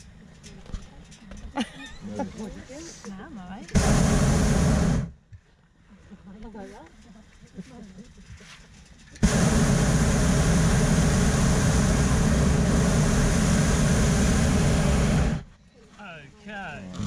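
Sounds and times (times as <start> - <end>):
light laughter: 1.5 - 2.9
propane burner roaring: 3.7 - 5.1, 9.2 - 15.5.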